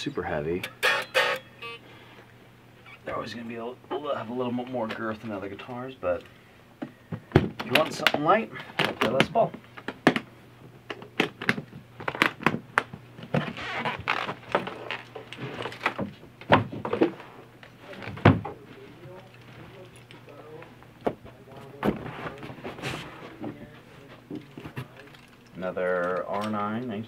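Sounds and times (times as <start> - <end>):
boxes knocking and rustling: 11.0 - 19.6, 21.0 - 25.3.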